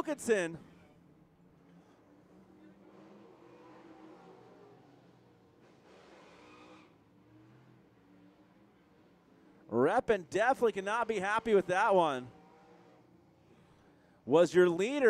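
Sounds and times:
faint race car engines: 0:00.0 - 0:15.0.

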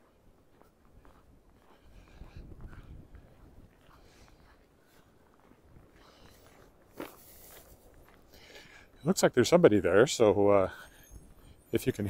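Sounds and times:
footsteps crunching on snow: 0:00.0 - 0:09.4
wind rumble on microphone: 0:01.0 - 0:04.6.

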